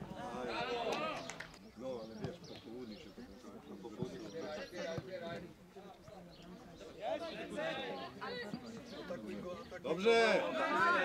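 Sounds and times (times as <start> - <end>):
people shouting outdoors: 0.0 - 1.4, 7.0 - 9.2, 9.9 - 11.0.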